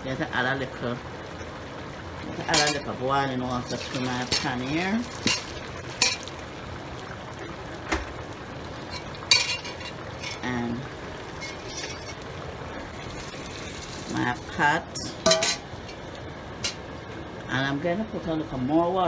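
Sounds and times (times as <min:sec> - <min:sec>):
meat sizzling in a pan: 0:02.2 - 0:16.9
metal utensils clinking: 0:02.4 - 0:02.9, 0:03.6 - 0:06.4, 0:08.9 - 0:10.5, 0:11.4 - 0:12.2, 0:15.2 - 0:16.0.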